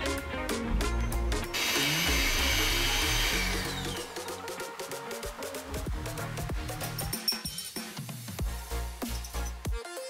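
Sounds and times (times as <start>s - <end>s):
electric hand mixer whipping: 1.6s - 4.2s.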